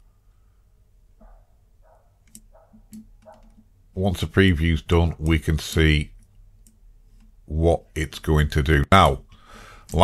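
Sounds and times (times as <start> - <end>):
computer mouse clicks: 2.2 - 3.7.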